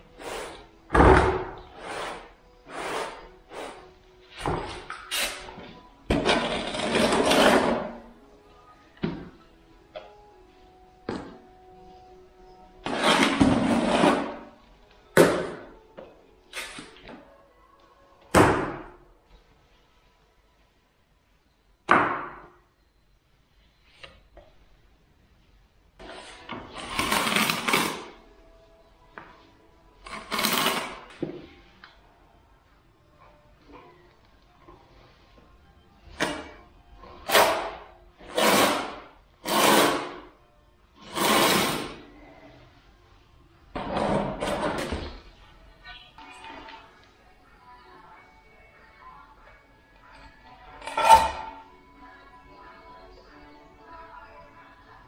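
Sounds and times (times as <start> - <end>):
sponge scrubbing concrete floor: 1.7 - 3.8, 12.9 - 14.5, 38.3 - 40.2, 41.0 - 42.1.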